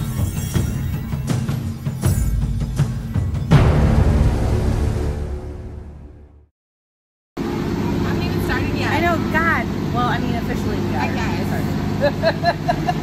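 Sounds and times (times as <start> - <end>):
women talking: 8.0 - 12.3
women laughing: 11.9 - 13.0.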